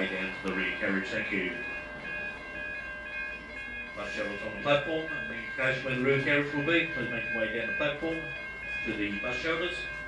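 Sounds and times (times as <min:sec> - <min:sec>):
train high whine: 0:00.0 - 0:10.0.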